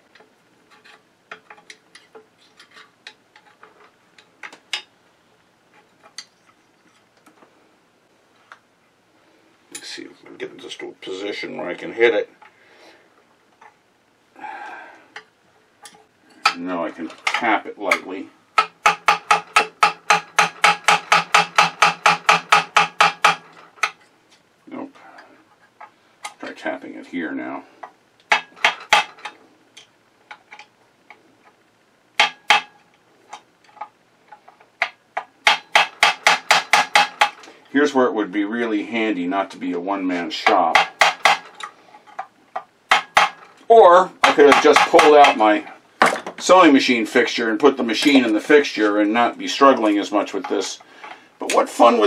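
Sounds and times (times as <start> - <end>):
mallet tapping metal punch: 18.6 - 23.6, 32.2 - 32.8, 34.8 - 37.4, 40.7 - 41.5, 42.9 - 43.4.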